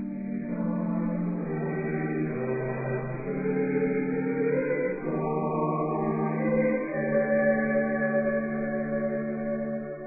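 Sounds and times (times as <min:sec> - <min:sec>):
choir singing slow chant: 0:00.4 - 0:09.9.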